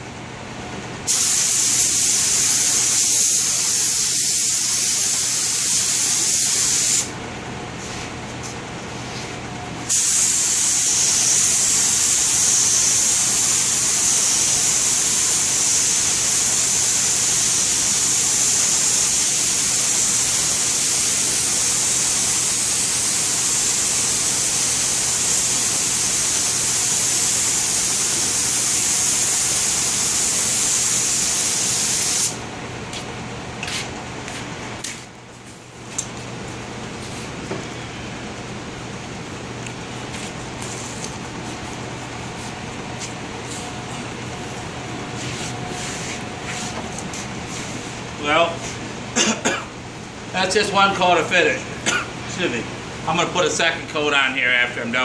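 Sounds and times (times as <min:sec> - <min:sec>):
spray gun air hiss: 0:01.1 - 0:07.1, 0:09.9 - 0:32.4, 0:40.6 - 0:41.0.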